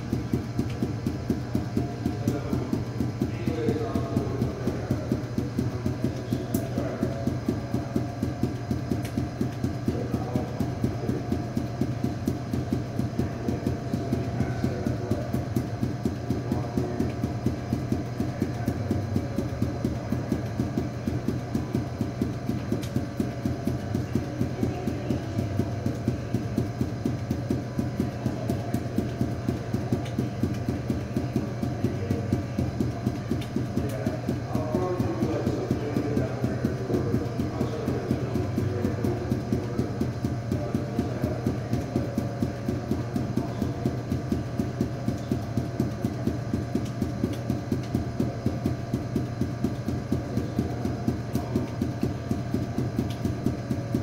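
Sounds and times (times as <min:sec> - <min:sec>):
balls bouncing on hard floor: 0:00.0 - 0:54.0.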